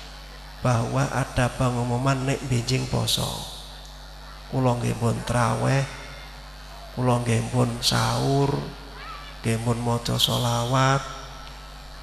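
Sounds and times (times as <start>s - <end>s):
faint steady hum: 0.0s - 12.0s
man preaching: 0.6s - 3.7s, 4.5s - 6.2s, 6.8s - 11.4s.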